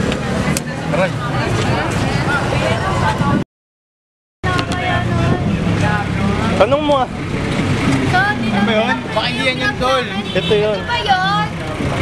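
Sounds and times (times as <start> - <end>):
engine and traffic hum: 0.0 - 3.4, 4.4 - 12.0
people talking and exclaiming: 0.0 - 3.4, 4.4 - 12.0.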